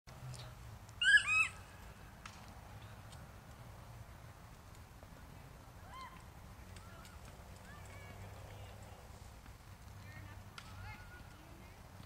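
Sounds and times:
bird giving high calls: 0:01.0 - 0:01.7.

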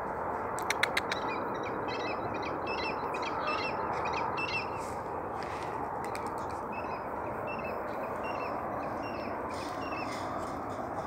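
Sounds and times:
bird chirping: 0:00.6 - 0:04.8, 0:06.7 - 0:10.5.

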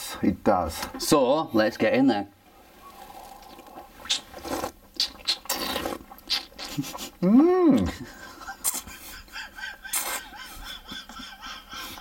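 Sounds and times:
person slurping wine: 0:02.8 - 0:07.9.

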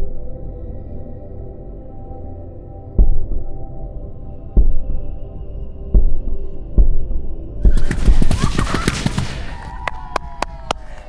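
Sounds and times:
sharp cracks: 0:07.7 - 0:11.0.

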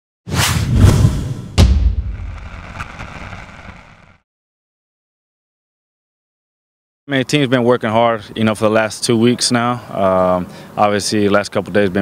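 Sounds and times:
loud whooshes: 0:00.3 - 0:04.2
deep boom: 0:00.6 - 0:04.1.

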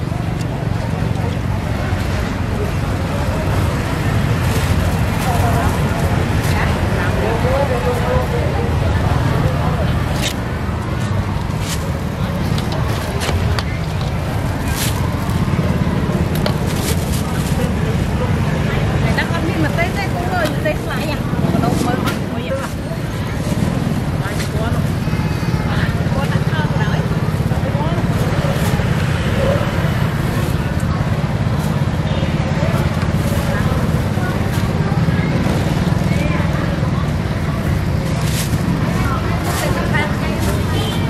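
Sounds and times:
people talking: 0:00.0 - 0:41.0
street traffic rumble: 0:00.0 - 0:41.0.

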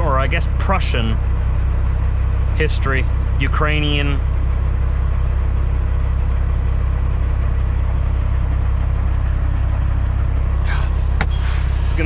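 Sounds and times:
truck diesel engine drone: 0:00.0 - 0:12.0.

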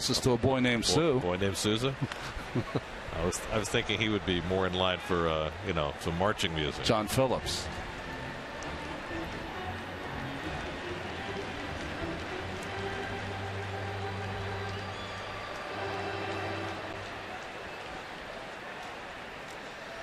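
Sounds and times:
music over stadium loudspeakers: 0:05.5 - 0:17.9
crowd murmur: 0:07.4 - 0:20.0.

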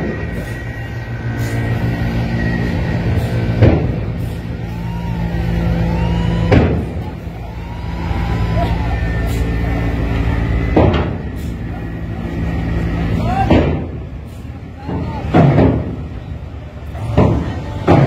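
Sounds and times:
bus diesel engine running: 0:00.0 - 0:18.0.

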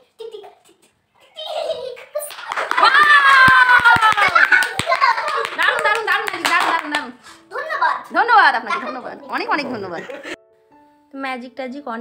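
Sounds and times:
children shouting and squealing: 0:01.2 - 0:05.4
hand claps: 0:02.0 - 0:07.2.

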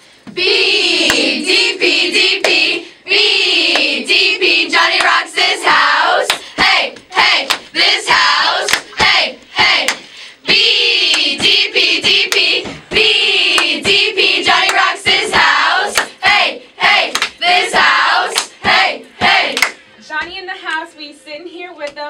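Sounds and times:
girls chanting a cheer: 0:00.4 - 0:19.8
rhythmic hand claps: 0:00.9 - 0:02.8, 0:03.6 - 0:20.4.

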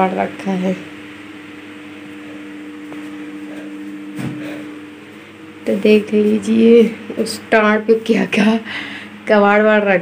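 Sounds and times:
electrical motor hum: 0:00.0 - 0:10.0.

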